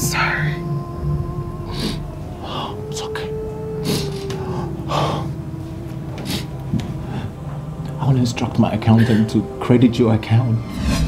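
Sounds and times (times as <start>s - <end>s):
held tone sinking in pitch: 0.0s - 4.9s.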